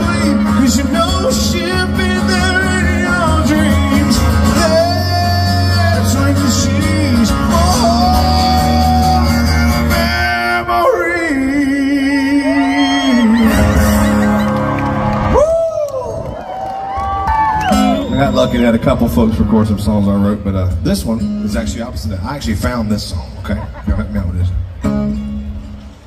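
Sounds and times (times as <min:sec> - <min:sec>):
acoustic guitar strumming: 0:00.0 - 0:12.4, 0:13.0 - 0:15.3, 0:17.7 - 0:23.0, 0:24.6 - 0:26.0
man singing: 0:00.0 - 0:14.0.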